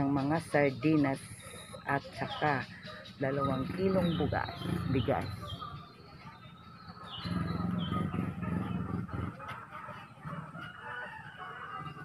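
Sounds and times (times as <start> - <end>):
birds chirping: 0.0 - 12.0
voices in background: 0.0 - 12.0.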